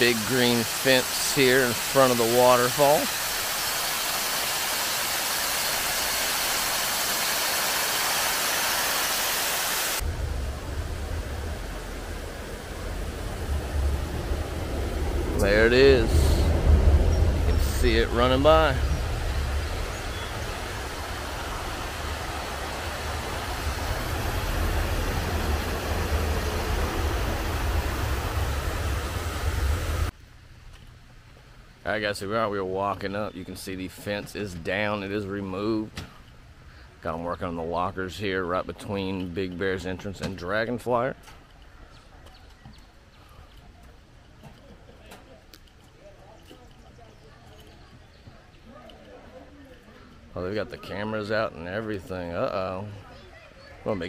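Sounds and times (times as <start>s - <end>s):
water rushing over rocks: 0.0s - 30.1s
wind rumbling on microphone: 10.0s - 30.1s.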